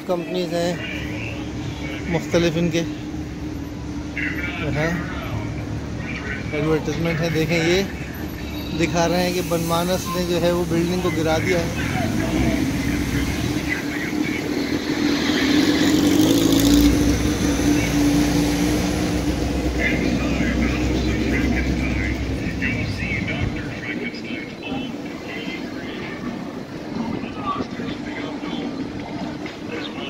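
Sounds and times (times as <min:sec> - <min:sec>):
people talking: 0:00.0 - 0:03.0, 0:04.1 - 0:16.2, 0:16.8 - 0:30.0
vehicle engine hum: 0:00.0 - 0:30.0.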